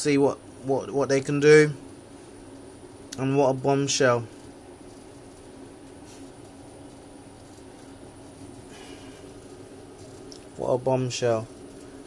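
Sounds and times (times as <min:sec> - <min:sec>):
faint high-pitched whine: 0:00.0 - 0:12.0
steady low hum: 0:00.0 - 0:12.0.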